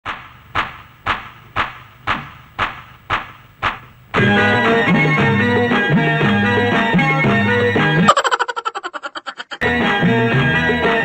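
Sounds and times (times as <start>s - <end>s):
slow hand claps: 0.1s - 3.9s.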